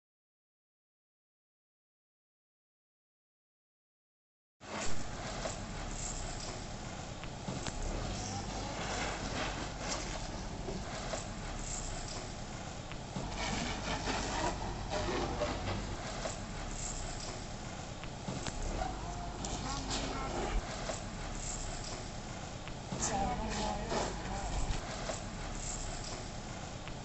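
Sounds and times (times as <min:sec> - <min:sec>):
outdoor background noise: 0:04.6 - 0:27.0
distant people talking: 0:05.2 - 0:26.9.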